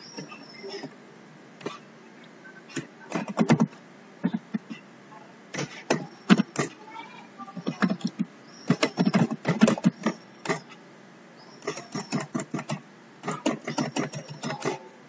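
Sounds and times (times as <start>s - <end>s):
keyboard typing clicks: 11.6s - 14.9s.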